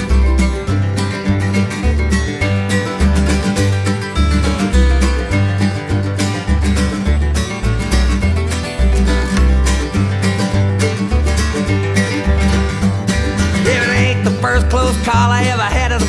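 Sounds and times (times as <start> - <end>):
bass line: 0.0 - 16.0
strummed acoustic guitar: 0.0 - 16.0
wavering melody line: 13.3 - 14.8.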